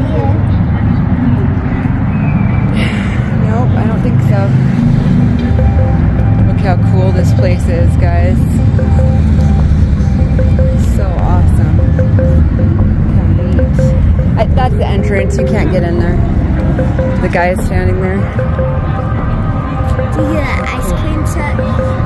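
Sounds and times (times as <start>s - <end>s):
low traffic rumble: 0.0s - 22.0s
ice cream truck jingle: 3.8s - 22.0s.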